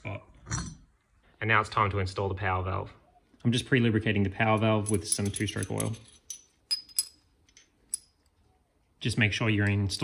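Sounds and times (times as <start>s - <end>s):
metal pieces clinking: 4.6s - 8.3s.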